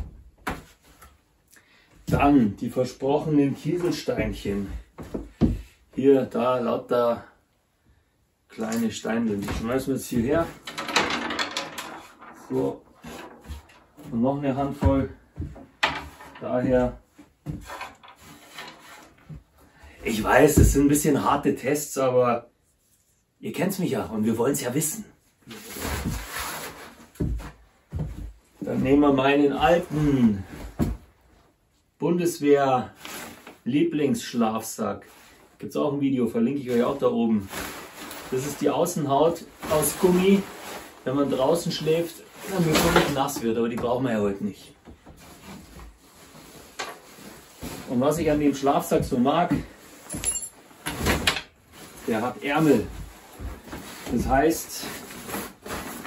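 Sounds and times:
pebbles clattering on wood: 0:10.3 - 0:14.1, 0:15.4 - 0:16.8, 0:17.4 - 0:19.0
sleeping bag rustling: 0:36.8 - 0:38.7.

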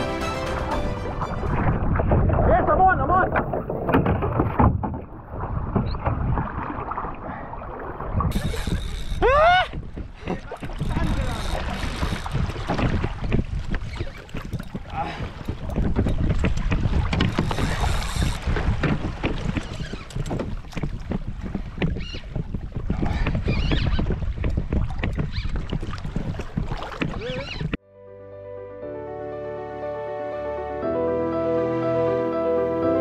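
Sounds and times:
water splashing around kayak: 0:00.0 - 0:27.8
wind buffeting microphone: 0:01.4 - 0:07.0, 0:08.0 - 0:27.8.

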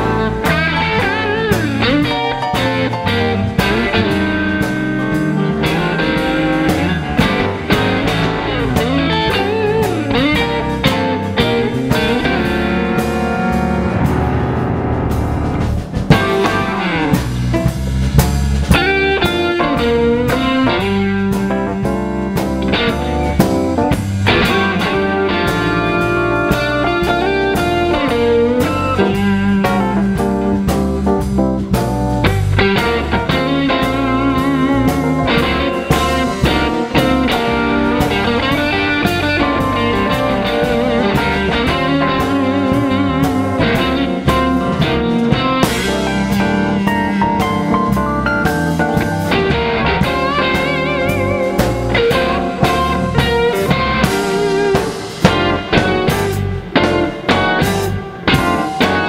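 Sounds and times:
blues-jazz band playing: 0:00.0 - 0:59.0
electric guitar: 0:00.0 - 0:59.0.

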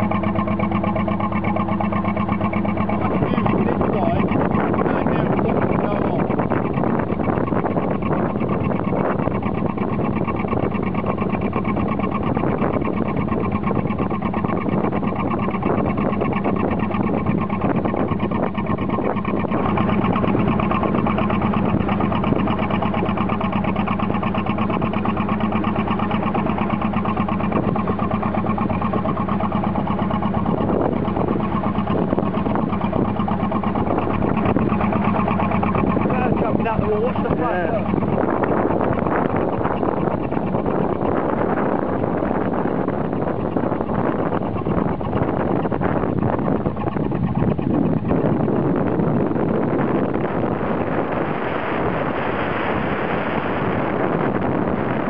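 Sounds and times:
boat engine running: 0:00.0 - 0:55.0
water on choppy water: 0:00.0 - 0:55.0
wind: 0:00.0 - 0:55.0.

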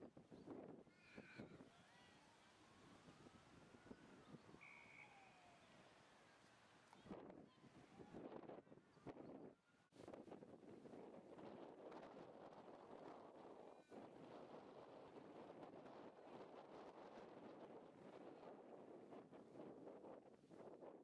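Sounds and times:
wind noise on microphone: 0:00.0 - 0:05.3, 0:07.0 - 0:21.0.

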